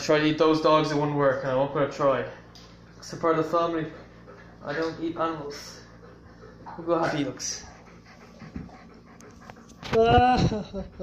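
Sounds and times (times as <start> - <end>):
dog breathing: 2.1 - 10.0.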